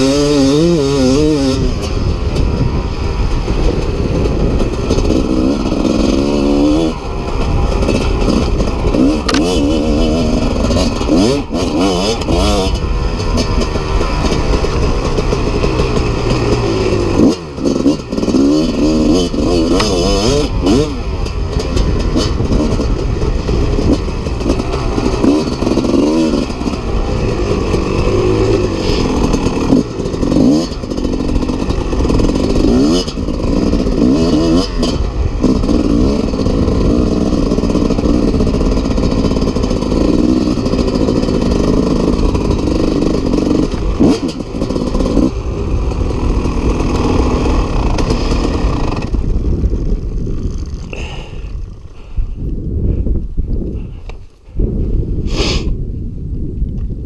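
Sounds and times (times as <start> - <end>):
dirt bike engine revving: 0.0 - 52.1.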